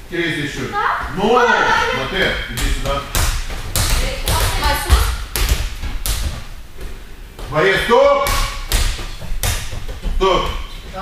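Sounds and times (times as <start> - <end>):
rubber balls thudding on mats: 2.2 - 11.0.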